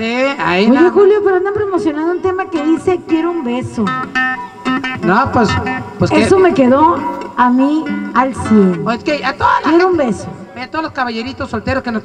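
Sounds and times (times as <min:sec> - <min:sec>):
live band playing: 0:00.0 - 0:12.0
strummed acoustic guitar: 0:02.2 - 0:11.9.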